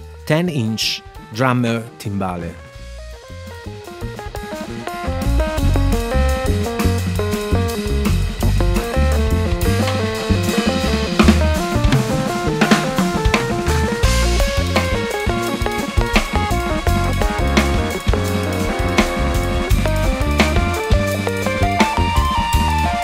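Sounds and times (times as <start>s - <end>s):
band music: 0.0s - 23.0s
cymbal and drum strokes: 2.7s - 23.0s.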